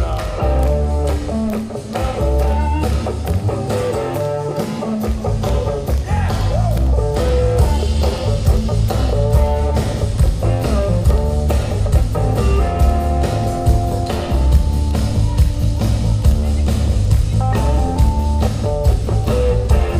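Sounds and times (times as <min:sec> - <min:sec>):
bass guitar: 0:00.0 - 0:19.9
drum kit: 0:00.0 - 0:19.9
electric guitar lead with bent notes: 0:00.0 - 0:19.9.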